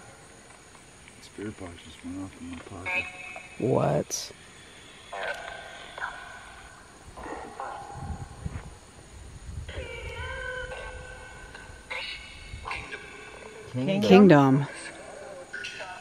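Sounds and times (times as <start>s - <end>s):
spirit box distorted tones: 2.2s - 8.4s.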